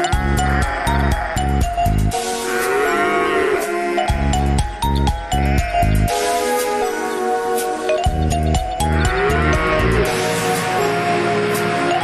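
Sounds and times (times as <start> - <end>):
cheerful cartoon music with a beat: 0.0 - 12.0.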